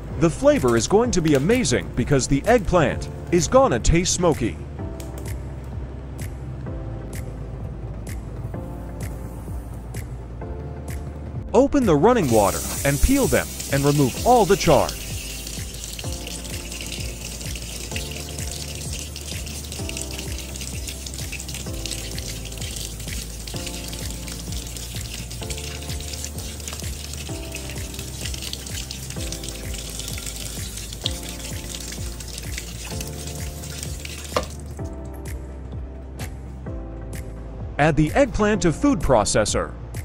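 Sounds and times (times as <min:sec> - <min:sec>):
tap water splashing over hands: 0:12.2 - 0:35.3.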